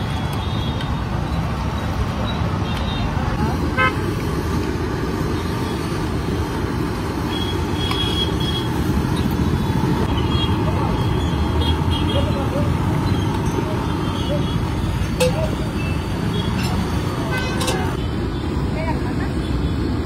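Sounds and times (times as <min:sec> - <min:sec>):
traffic rumble: 0:00.0 - 0:20.0.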